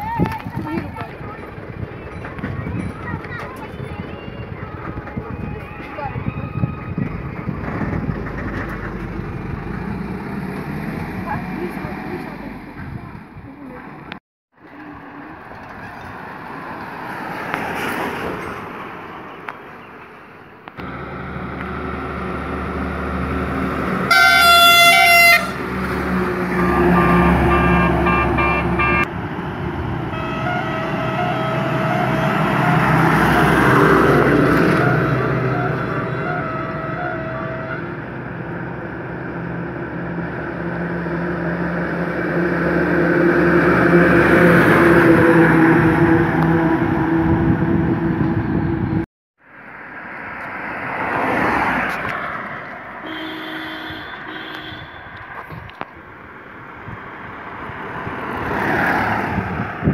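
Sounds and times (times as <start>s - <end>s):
trucks driving past: 0.0s - 59.9s
loud truck horn blast: 22.9s - 29.1s, 30.1s - 38.1s, 53.0s - 55.2s
long patterned horn tone: 24.0s - 29.1s, 30.1s - 33.6s, 34.3s - 38.0s, 53.0s - 55.2s.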